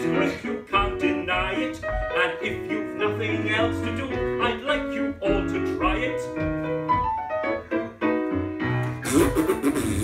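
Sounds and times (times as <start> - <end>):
piano accompaniment: 0.0 - 10.0.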